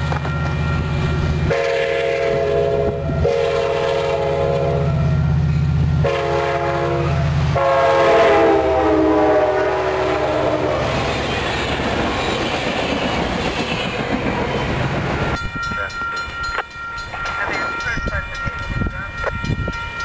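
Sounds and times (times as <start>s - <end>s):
train passing at speed: 0.0s - 20.0s
train horn: 1.4s - 5.3s, 6.0s - 11.6s.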